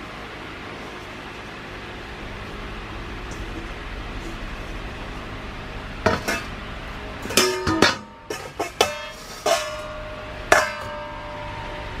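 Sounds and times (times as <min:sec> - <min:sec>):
metal bowl clanging: 0:06.1 - 0:06.6, 0:07.2 - 0:11.6
metal bowls ringing: 0:07.2 - 0:12.0.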